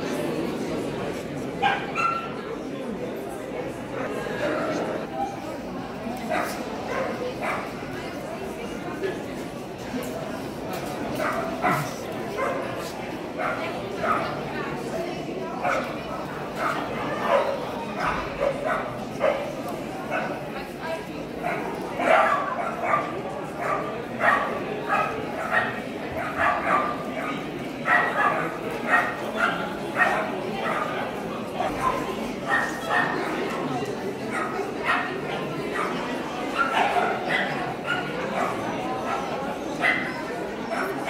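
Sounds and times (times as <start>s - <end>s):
crowd chatter: 0.0s - 41.0s
dogs barking: 21.5s - 27.1s, 27.9s - 30.9s, 34.3s - 41.0s.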